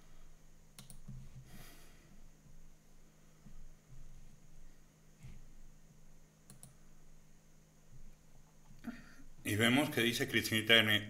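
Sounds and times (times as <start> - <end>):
faint low hum: 0.0 - 11.0
faint clicks: 0.8 - 1.2, 6.4 - 6.8.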